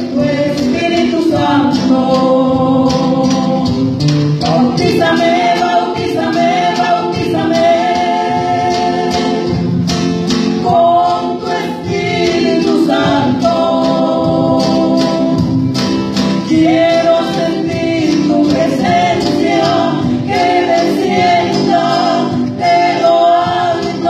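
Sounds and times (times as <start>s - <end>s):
drum kit: 0.0s - 24.0s
voices singing held notes: 0.0s - 24.0s.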